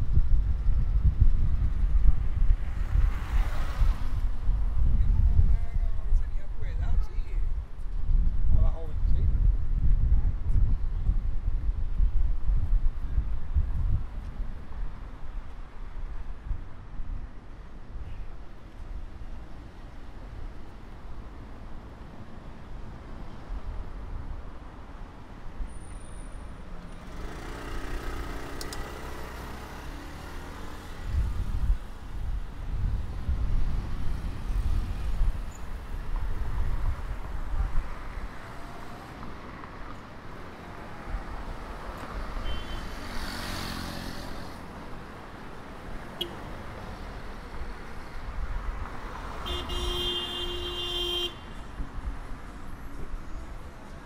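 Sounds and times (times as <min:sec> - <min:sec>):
cars and motorcycles passing: 0:00.0 - 0:16.2, 0:18.5 - 0:54.0
wind rumbling on microphone: 0:00.0 - 0:22.0, 0:28.9 - 0:49.8.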